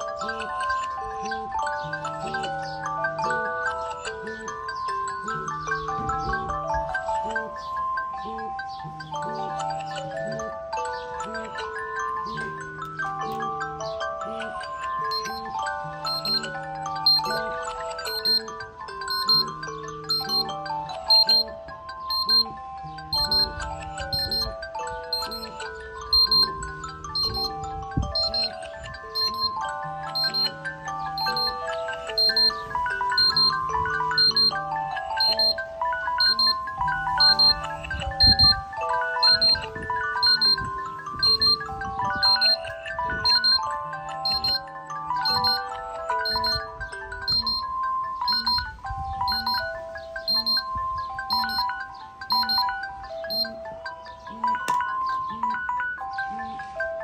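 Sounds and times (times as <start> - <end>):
chiming ringtone melodies: 0.0 - 57.0
short high beep: 22.1 - 22.5, 26.2 - 26.5, 29.2 - 29.5, 42.2 - 42.6.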